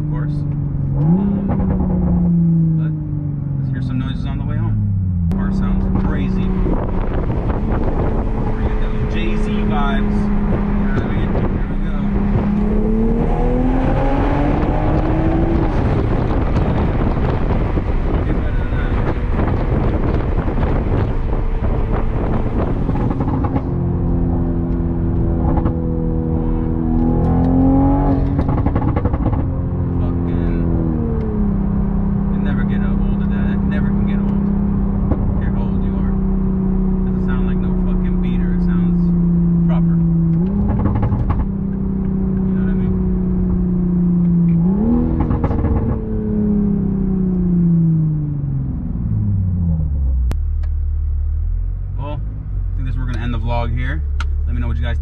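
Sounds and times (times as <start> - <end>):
car engine drone: 0.0 - 55.0
road rumble: 0.0 - 55.0.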